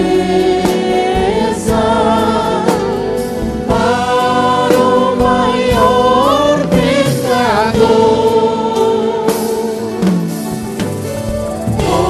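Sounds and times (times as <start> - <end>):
voices singing together: 0.0 - 10.4, 11.7 - 12.0
band playing: 3.7 - 8.8.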